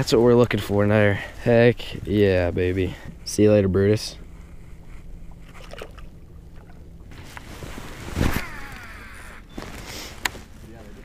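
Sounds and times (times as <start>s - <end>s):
fishing cast rush: 8.1s - 9.3s
fishing reel spool whirring: 8.4s - 9.5s.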